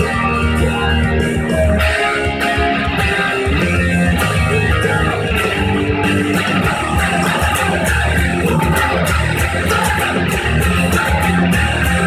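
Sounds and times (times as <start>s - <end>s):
electric guitar: 0.0s - 12.0s
loud rock recording: 0.0s - 12.0s.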